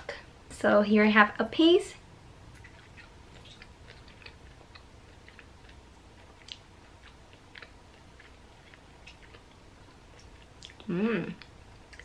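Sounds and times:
faint chewing with wet clicks: 0:02.5 - 0:12.0.

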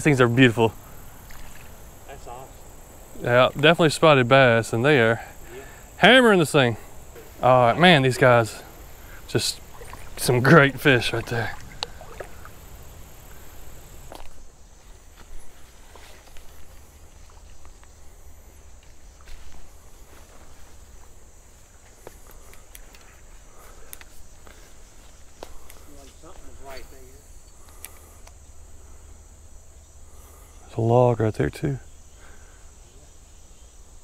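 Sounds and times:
footsteps in brush: 0:14.0 - 0:18.0, 0:18.6 - 0:26.9.

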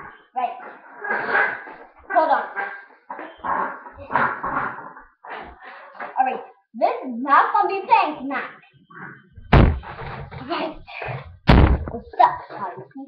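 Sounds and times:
soft low bumps: 0:09.4 - 0:12.2.

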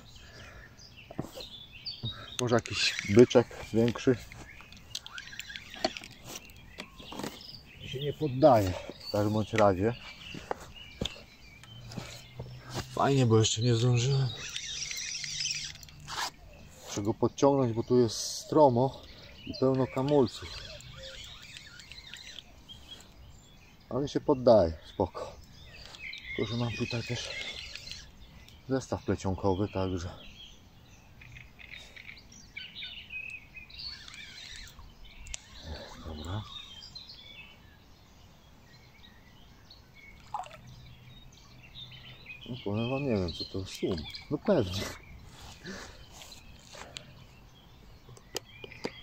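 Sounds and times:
birds chirping: 0:00.0 - 0:49.0
fishing reel whirring: 0:02.6 - 0:06.9, 0:13.8 - 0:16.4, 0:19.6 - 0:23.1, 0:26.5 - 0:28.2, 0:33.8 - 0:36.4
small splash on water: 0:40.2 - 0:40.7.

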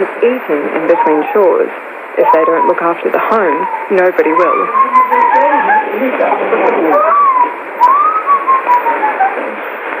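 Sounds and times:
shortwave hiss: 0:00.0 - 0:10.0.

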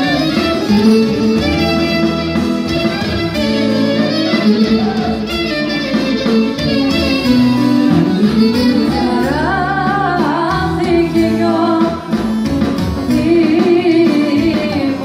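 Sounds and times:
clarinet melody: 0:00.0 - 0:09.8
folk dance band through speakers: 0:00.0 - 0:15.0
person singing: 0:08.4 - 0:12.1, 0:13.1 - 0:15.0.

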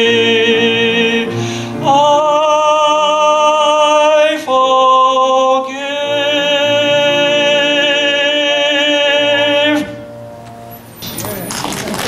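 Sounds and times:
piano chord: 0:00.0 - 0:12.0
congregation clapping: 0:11.1 - 0:12.0.

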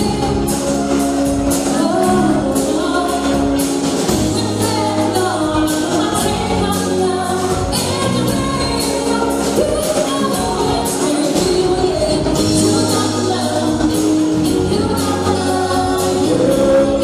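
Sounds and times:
live band playing: 0:00.0 - 0:17.0
sung vocals: 0:00.0 - 0:17.0.

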